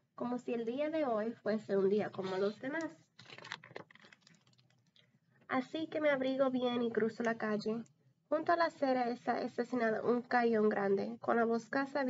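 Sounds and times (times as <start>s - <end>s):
book page turning: 3.2s - 4.7s.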